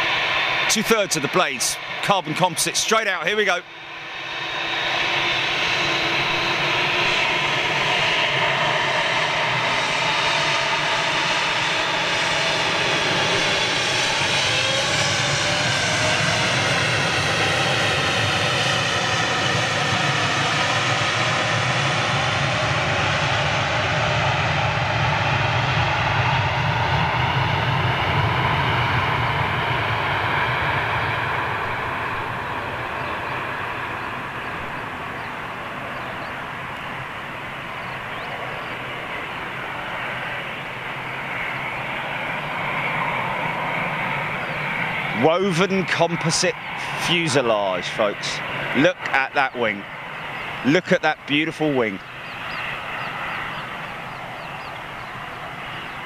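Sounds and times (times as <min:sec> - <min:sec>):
jet engines at takeoff: 0:00.0 - 0:56.0.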